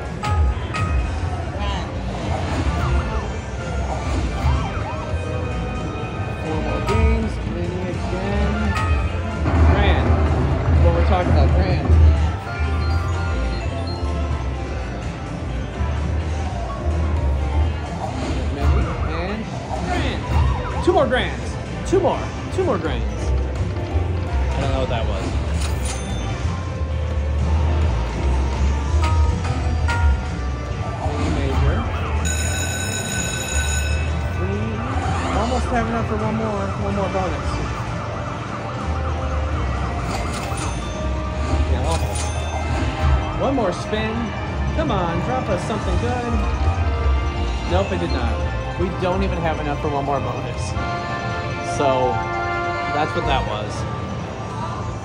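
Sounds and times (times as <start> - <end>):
jingling slot machine music: 0.0 - 55.0.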